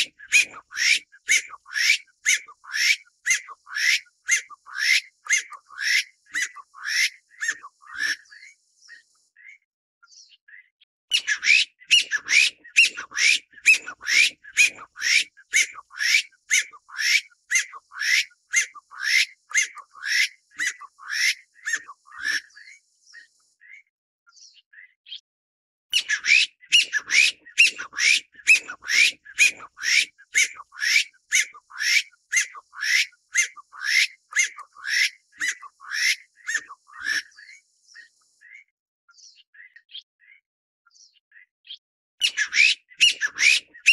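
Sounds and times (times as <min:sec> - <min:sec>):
partridge calling: 0:00.0 - 0:09.6, 0:10.5 - 0:23.8, 0:25.9 - 0:38.6, 0:42.2 - 0:43.9.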